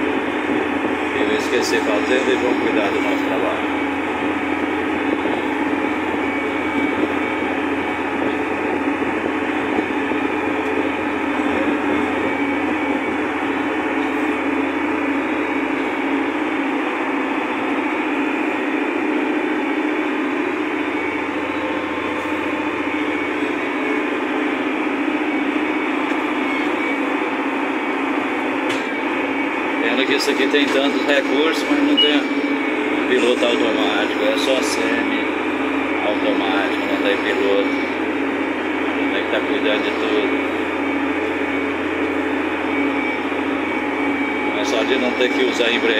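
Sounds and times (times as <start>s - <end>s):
tractor diesel engine drone: 0.0s - 45.9s.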